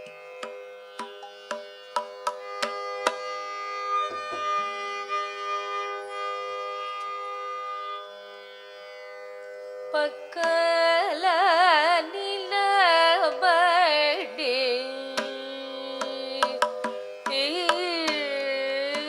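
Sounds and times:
tanpura drone: 0:00.0 - 0:19.0.

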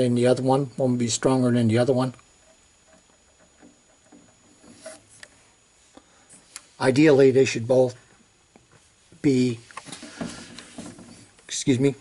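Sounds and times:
faint high-pitched whine: 0:00.0 - 0:12.0
soft handling sounds: 0:07.9 - 0:11.6.

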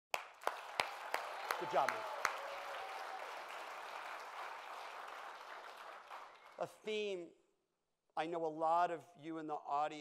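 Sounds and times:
audience applause: 0:00.1 - 0:06.7.

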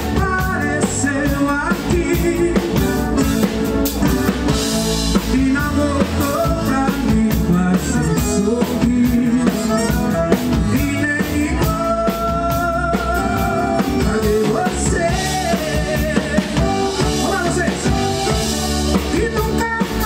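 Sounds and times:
accordion: 0:00.0 - 0:20.0
drum kit: 0:00.0 - 0:20.0
electric bass: 0:00.0 - 0:20.0
man singing: 0:00.0 - 0:20.0.

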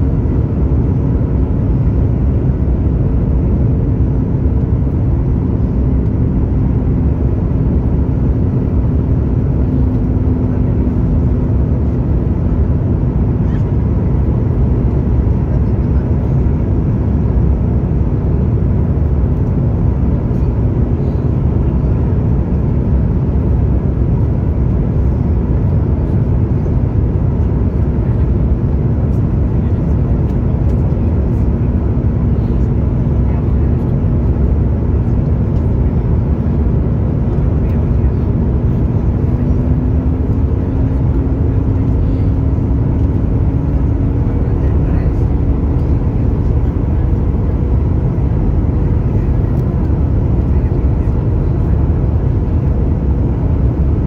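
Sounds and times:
airplane cabin rumble: 0:00.0 - 0:54.0.

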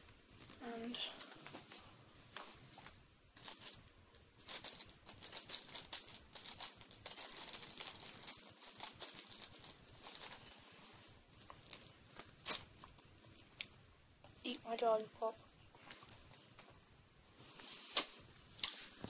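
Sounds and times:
packaging crinkling and rustling: 0:00.3 - 0:01.8, 0:02.7 - 0:03.8, 0:04.4 - 0:10.7, 0:11.3 - 0:13.1.

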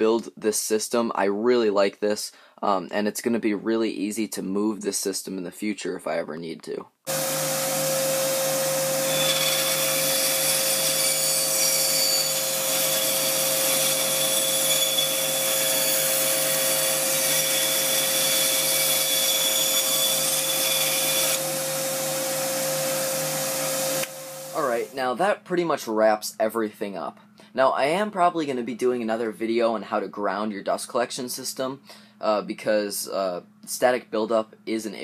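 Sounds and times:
bandsaw cutting wood: 0:07.1 - 0:24.9
shop vac running: 0:07.1 - 0:25.0.

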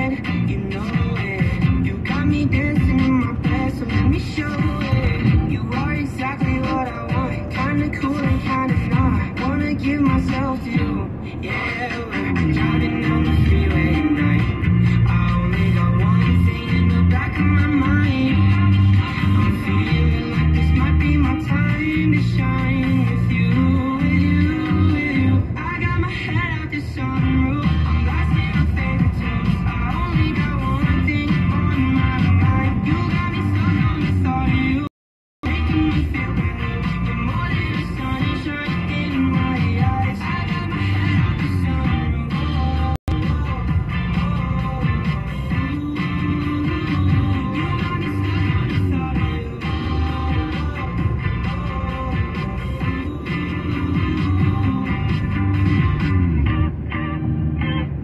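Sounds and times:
song on car radio: 0:00.0 - 0:58.0.

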